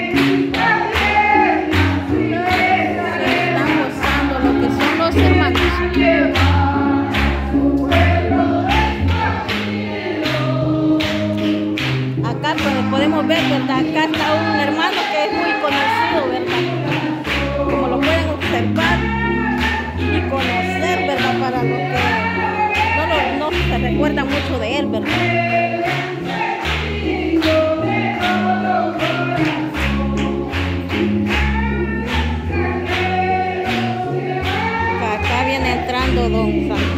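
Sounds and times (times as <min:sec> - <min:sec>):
congregation singing a hymn: 0:00.0 - 0:36.9
hand-clapping: 0:00.0 - 0:36.9
live band with keyboard and bass: 0:00.0 - 0:36.9.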